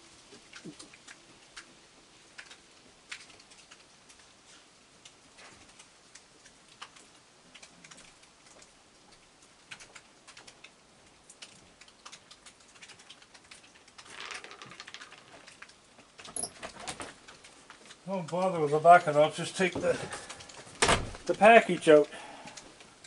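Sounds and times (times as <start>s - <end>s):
animal crunching dry kibble: 0.3s - 23.0s.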